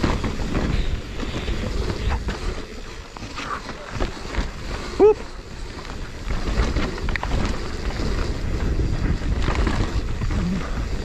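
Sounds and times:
bike clicks and rattles: 0.0s - 11.0s
bike tyres rumbling on dirt: 0.0s - 11.0s
wind buffeting microphone: 0.0s - 11.0s.

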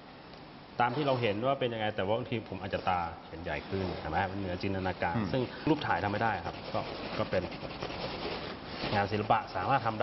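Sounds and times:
pencil scratching on canvas: 5.7s - 9.3s.

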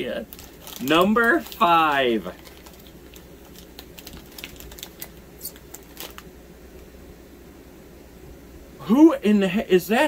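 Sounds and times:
wrapper crackling: 0.0s - 6.3s.

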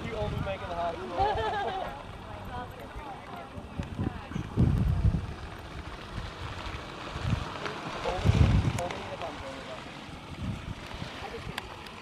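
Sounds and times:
people talking in background: 0.0s - 10.2s, 10.8s - 12.0s
wind buffeting microphone: 0.0s - 12.0s.

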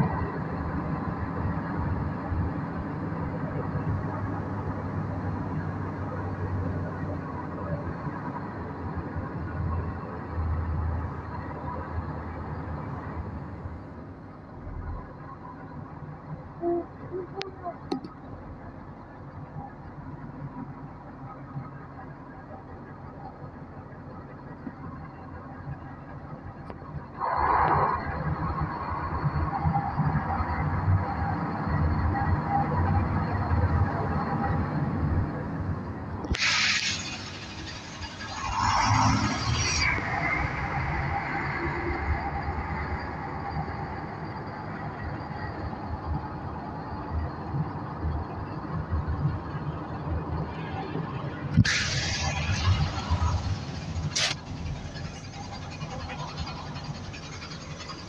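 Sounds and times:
bus engine running: 0.0s - 58.0s
air hiss bursts: 36.3s - 39.0s, 51.6s - 54.4s.

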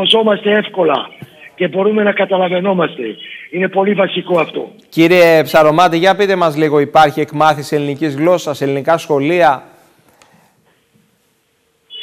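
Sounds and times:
faint steady tone: 11.8s - 12.0s.

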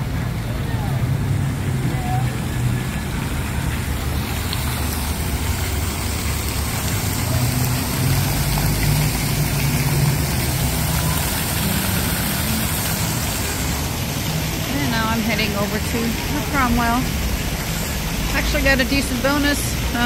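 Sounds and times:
fountain jets splashing into pool: 0.0s - 20.0s
road traffic hum: 0.0s - 20.0s.

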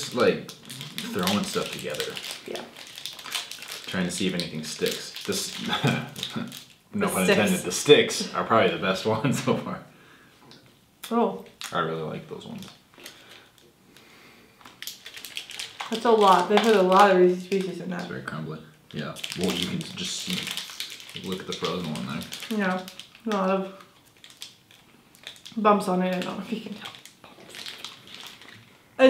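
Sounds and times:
plastic wrapper crackling: 0.0s - 6.8s, 11.5s - 11.8s, 12.4s - 18.3s, 18.9s - 28.7s
faint chewing: 18.9s - 28.7s.

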